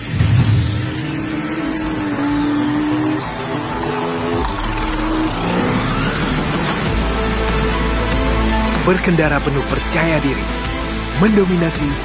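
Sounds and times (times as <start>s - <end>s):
motorcycle engine revving: 0.0s - 8.2s
background music: 0.0s - 12.0s.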